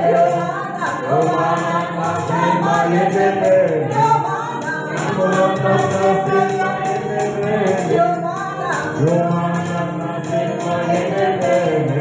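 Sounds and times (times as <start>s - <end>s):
group singing gospel a cappella: 0.0s - 12.0s.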